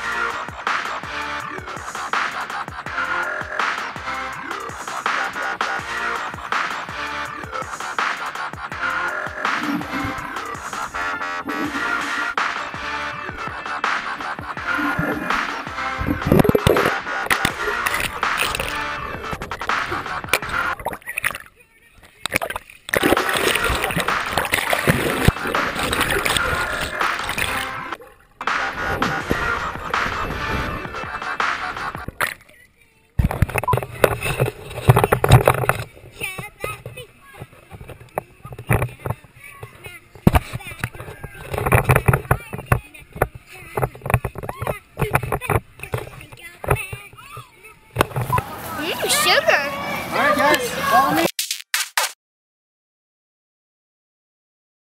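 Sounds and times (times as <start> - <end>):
music: 0.0 - 21.4, 22.4 - 32.4, 33.2 - 47.1
water splashing: 0.0 - 47.4
indistinct voices: 0.0 - 51.3
child chattering: 33.8 - 47.9, 48.6 - 51.3
camera handling knocks and rustles: 48.0 - 48.4.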